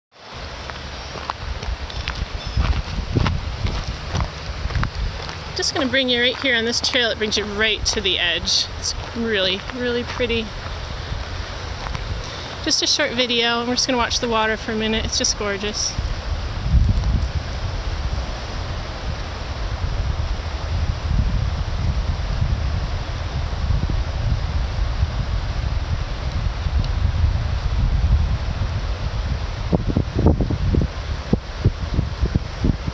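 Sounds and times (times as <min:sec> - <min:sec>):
river rushing: 0:00.1 - 0:32.9
wind buffeting microphone: 0:00.2 - 0:32.9.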